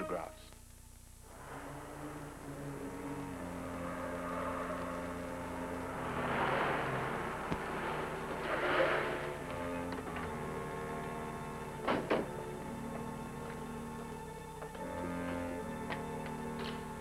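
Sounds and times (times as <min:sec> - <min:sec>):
car engines running: 0:01.2 - 0:17.0
cars passing: 0:01.2 - 0:17.0.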